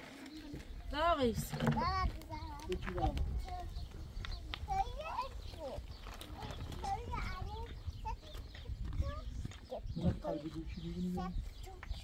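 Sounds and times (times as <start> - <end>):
people's voices: 0.3 - 12.0.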